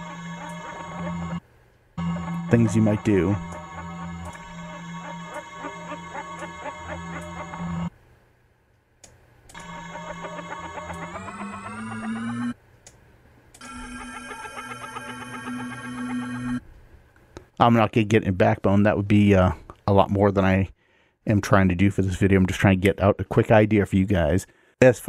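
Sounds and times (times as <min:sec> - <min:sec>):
sustained buzzy pitched tones: 0:00.0 - 0:01.4, 0:02.0 - 0:07.9, 0:09.5 - 0:12.6, 0:13.6 - 0:16.6.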